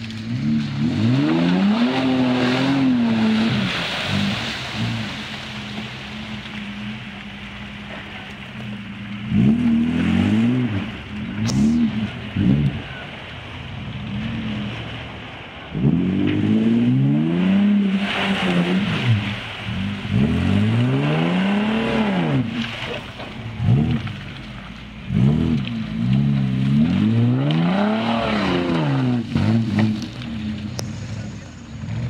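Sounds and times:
off-road vehicle engine revving: 0.0 - 32.0.

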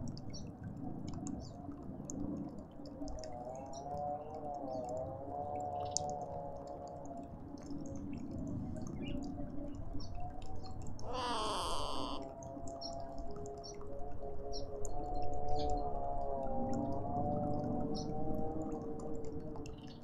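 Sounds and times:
small birds chirping: 11.1 - 12.2.

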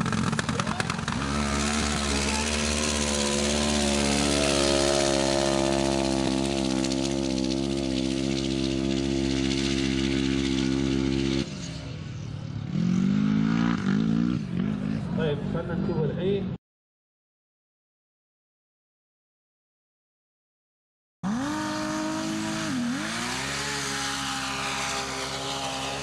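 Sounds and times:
buggy engine at full throttle: 0.0 - 16.4, 21.2 - 26.0.

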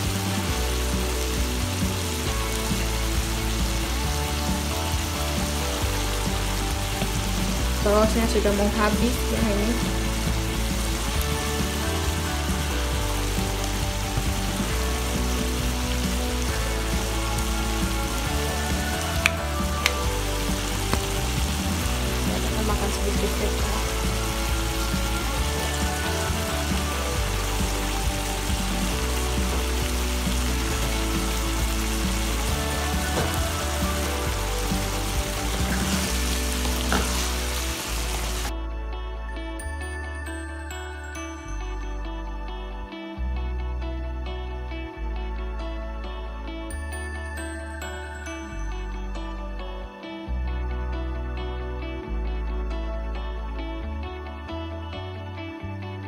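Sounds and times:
food sizzling in frying pan: 0.0 - 38.5
soft background music: 0.0 - 56.0.

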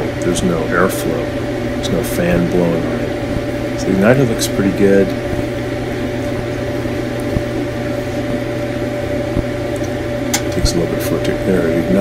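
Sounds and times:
dryer motor humming: 0.0 - 12.0.

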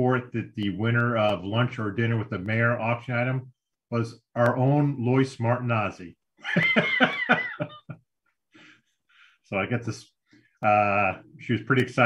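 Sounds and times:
man laughing: 6.4 - 8.0.

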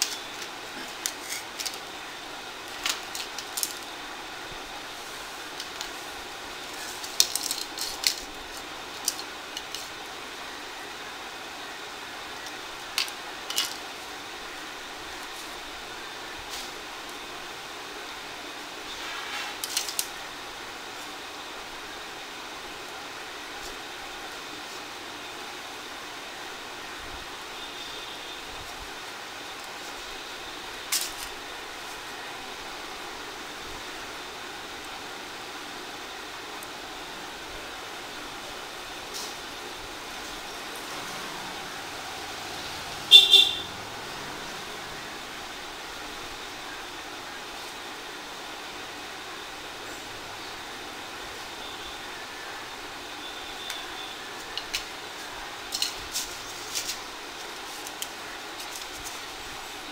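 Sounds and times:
background hiss: 0.0 - 59.9
vehicle horn toots: 18.9 - 19.6, 43.0 - 43.9.

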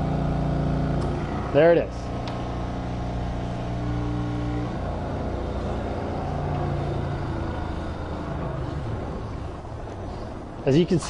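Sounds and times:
hydraulic pump humming: 0.0 - 10.7.

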